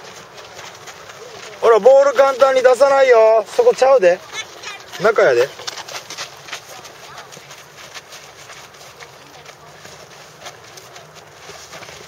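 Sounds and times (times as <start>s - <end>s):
feet scuffing on dirt: 0.0s - 12.0s.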